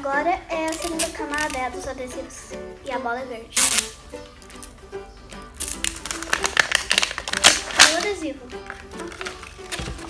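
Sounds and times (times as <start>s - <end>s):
quiet background music: 0.0s - 10.0s
plastic shell clicking and crackling: 5.6s - 10.0s.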